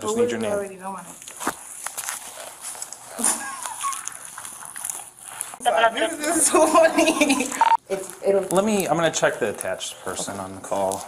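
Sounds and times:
woman laughing: 3.2 - 4.3, 5.6 - 7.8.

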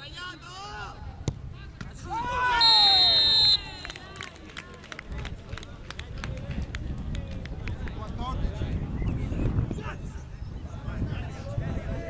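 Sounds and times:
players yelling and cheering: 2.0 - 4.0.

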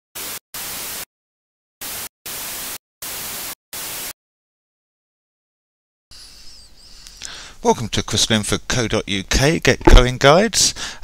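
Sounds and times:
white noise static bursts: 0.2 - 1.1, 1.8 - 4.2.

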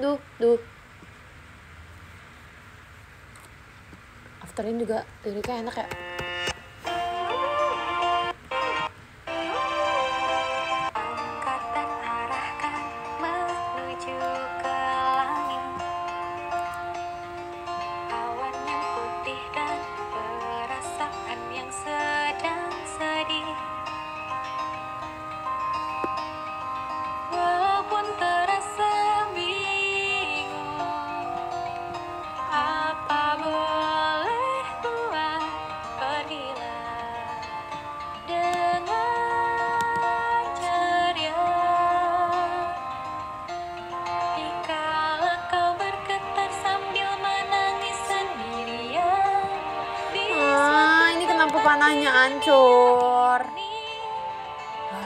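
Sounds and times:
pop song with woman singing: 10.9 - 16.9, 17.8 - 24.0, 27.3 - 43.0, 44.1 - 55.0.

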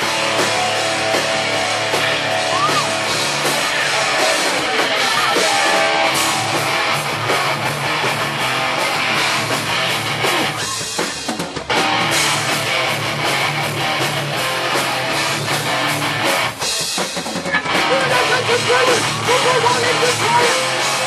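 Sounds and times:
distorted electric guitars: 0.0 - 21.0
drum kit: 0.0 - 21.0.

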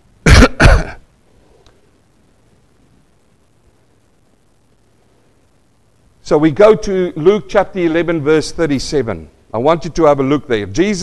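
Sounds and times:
man clearing his throat: 0.2 - 1.0.

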